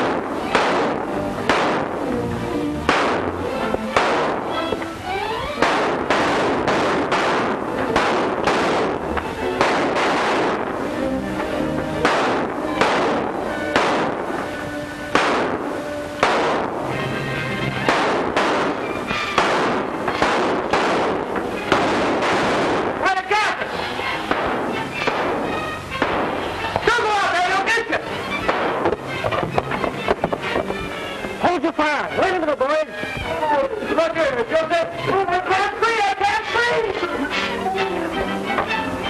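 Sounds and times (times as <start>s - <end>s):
gunshots with ringing tail: 0.0s - 17.0s, 17.7s - 29.3s
orchestral film score: 0.0s - 39.0s.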